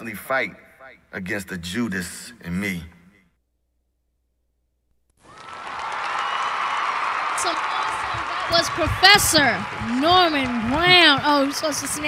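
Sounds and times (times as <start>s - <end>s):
group clapping: 5.2s - 12.0s.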